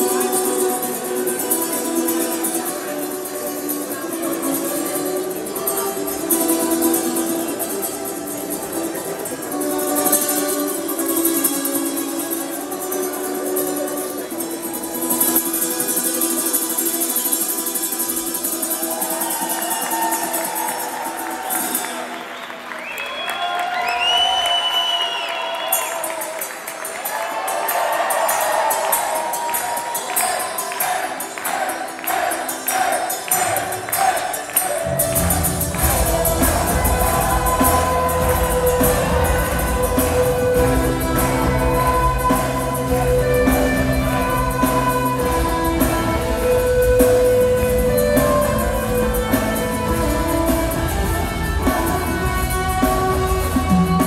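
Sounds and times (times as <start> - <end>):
acoustic guitar playing slowly: 0.0 - 22.4, 25.7 - 54.0
band playing: 0.0 - 22.7, 25.4 - 54.0
crowd cheering with whistle: 18.2 - 54.0
tambourine beat: 25.1 - 54.0
voices: 25.7 - 54.0.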